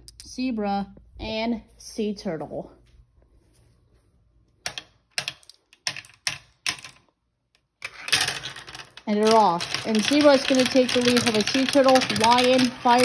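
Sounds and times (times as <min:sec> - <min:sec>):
marbles clacking and rattling on track: 0:04.7 - 0:07.0, 0:07.8 - 0:13.0.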